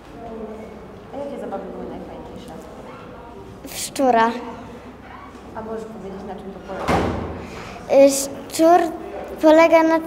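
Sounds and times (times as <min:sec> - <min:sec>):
girl speaking: 0:03.7 - 0:04.6, 0:07.8 - 0:10.0
faint children's voices: 0:07.6 - 0:10.0.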